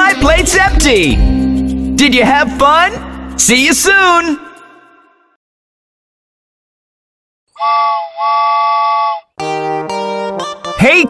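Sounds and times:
music: 0:00.0 - 0:04.7, 0:07.6 - 0:11.0
cartoon steam train whistle: 0:07.6 - 0:09.3.

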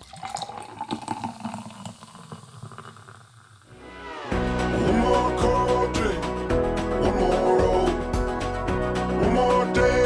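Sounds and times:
water running and splashing: 0:00.0 - 0:03.7.

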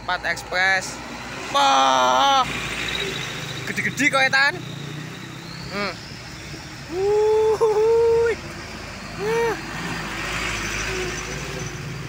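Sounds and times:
diesel truck engine rumbling: 0:00.0 - 0:12.0
motorbikes: 0:00.0 - 0:12.0
tyres hissing on road: 0:00.6 - 0:12.0.

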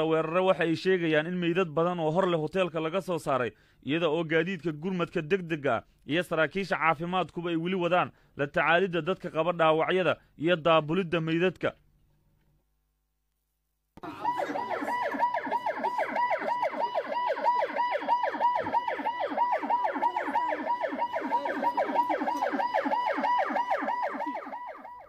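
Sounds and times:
emergency siren yelping: 0:14.0 - 0:25.0.

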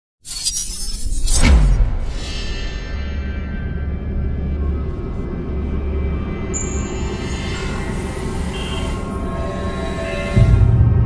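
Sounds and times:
dark intro music: 0:01.4 - 0:11.0.

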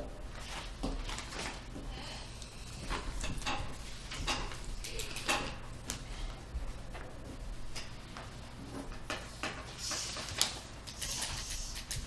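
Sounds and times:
steady low hum: 0:00.0 - 0:12.0
paper rustling: 0:00.3 - 0:01.7.

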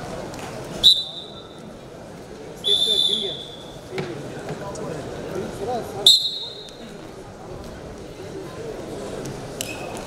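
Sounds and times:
crowd voices and shouts: 0:00.0 - 0:10.0
referee's whistle blasts: 0:00.8 - 0:01.6, 0:02.6 - 0:03.8, 0:06.1 - 0:06.7.

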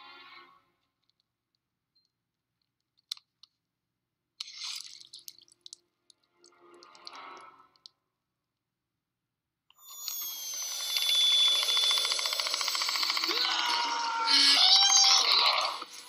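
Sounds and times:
high whines and sliding tones: 0:09.8 - 0:13.3.

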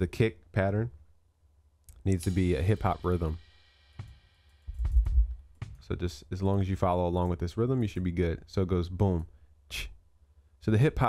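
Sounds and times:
kick drum thud: 0:04.0 - 0:06.0.

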